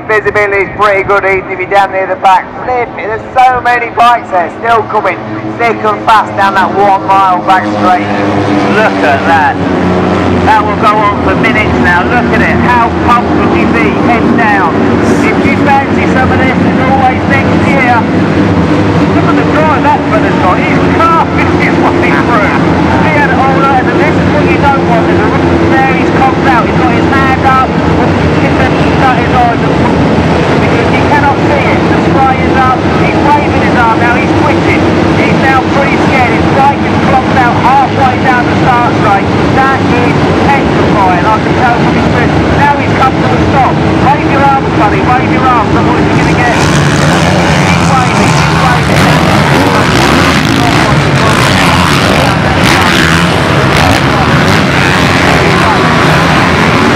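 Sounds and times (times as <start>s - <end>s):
many motorcycles racing: 0.0s - 56.9s.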